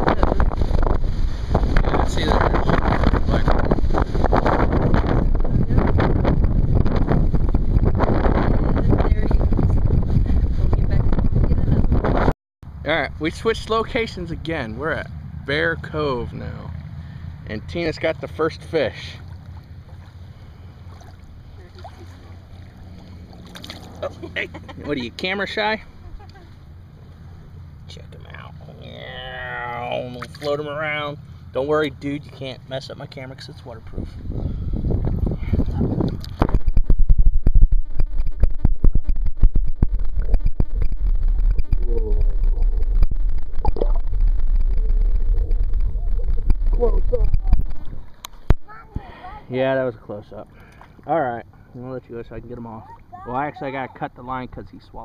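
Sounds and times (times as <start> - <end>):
wind rumble on microphone: 0.0 - 12.3, 33.8 - 49.1
faint water splashes: 18.6 - 24.6, 29.8 - 31.5, 50.4 - 51.7.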